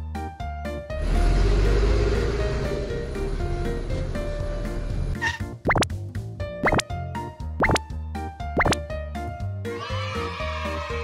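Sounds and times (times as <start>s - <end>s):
background music: 0.0s - 11.0s
cartoon bloop sound effect: 5.7s - 5.9s, 6.6s - 6.8s, 7.6s - 7.8s, 8.6s - 8.8s.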